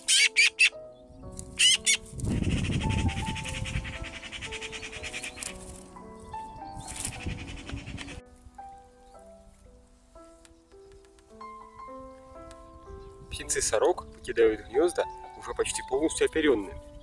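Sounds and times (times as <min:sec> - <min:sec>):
young magpies squawking: 0:00.0 - 0:00.8, 0:01.5 - 0:05.6
background music: 0:00.0 - 0:17.0.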